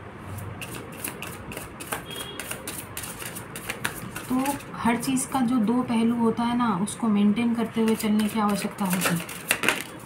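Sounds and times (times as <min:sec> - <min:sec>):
cards being shuffled: 0:00.6 - 0:04.7, 0:07.9 - 0:10.0.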